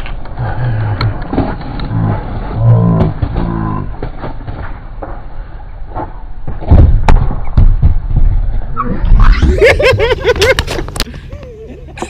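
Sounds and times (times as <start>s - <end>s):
skater thudding onto ramp: 5.9s - 8.6s.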